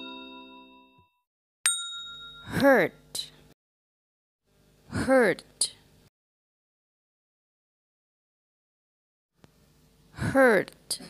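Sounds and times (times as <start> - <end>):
chime-like dings: 0.0 - 1.1, 1.7 - 2.7.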